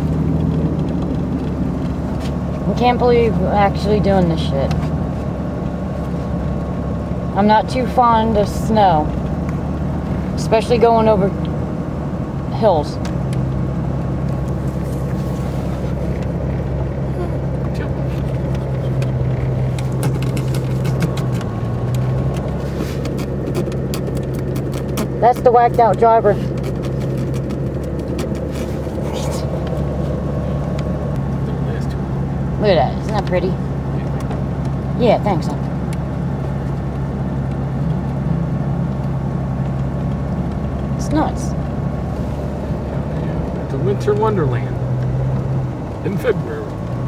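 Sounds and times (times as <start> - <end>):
car engine and road drone: 0.0 - 47.0.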